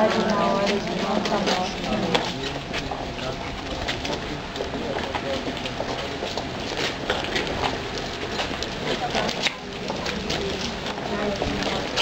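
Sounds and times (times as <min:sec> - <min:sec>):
crowd footsteps on pavement: 0:00.0 - 0:12.0
murmur of voices: 0:00.0 - 0:12.0.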